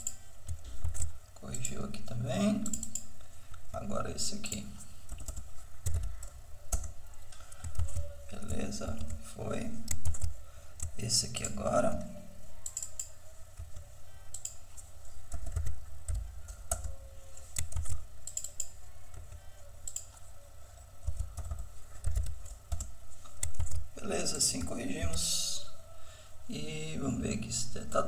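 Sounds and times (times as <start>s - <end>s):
computer keyboard typing: 0.0s - 3.3s, 4.1s - 25.3s.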